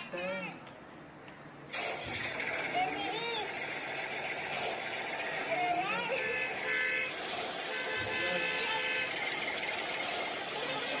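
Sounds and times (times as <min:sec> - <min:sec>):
engine-like noise: 0:00.0 - 0:11.0
horn-like tone: 0:06.0 - 0:09.4.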